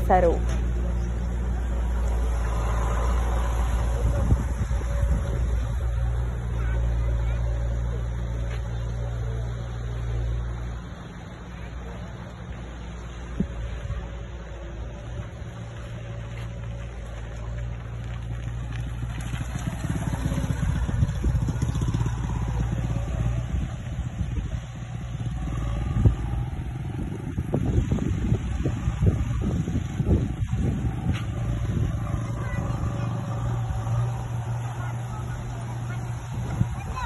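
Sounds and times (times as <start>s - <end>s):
motorcycle engine rumbling: 0.0s - 37.0s.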